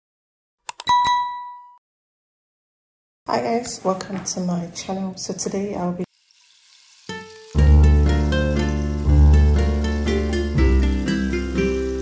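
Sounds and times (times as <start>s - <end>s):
bell ding: 0.8s - 1.8s.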